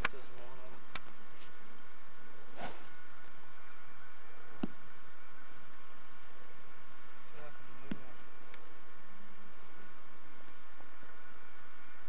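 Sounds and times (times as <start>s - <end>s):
faint constant hum: 0.0s - 12.0s
tape hiss: 0.0s - 12.0s.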